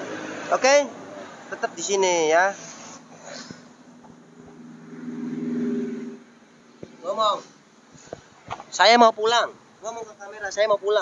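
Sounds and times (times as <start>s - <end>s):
vehicle engine passing: 0.0s - 7.9s.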